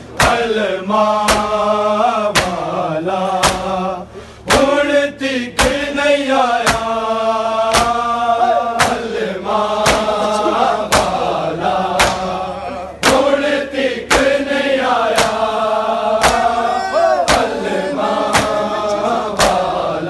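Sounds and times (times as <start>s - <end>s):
men chanting in unison: 0.1s - 20.0s
hands beating on chests: 2.3s - 2.6s, 3.4s - 3.7s, 7.7s - 8.0s, 8.8s - 9.1s, 9.8s - 10.2s, 10.9s - 11.2s, 12.0s - 12.3s, 13.0s - 13.3s, 15.1s - 15.5s, 16.2s - 16.6s, 17.2s - 17.7s, 18.3s - 18.7s, 19.4s - 19.7s.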